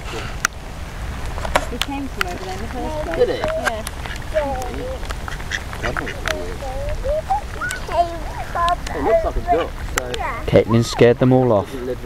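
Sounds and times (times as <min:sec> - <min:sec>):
ducks quacking: 0:03.0 - 0:09.9.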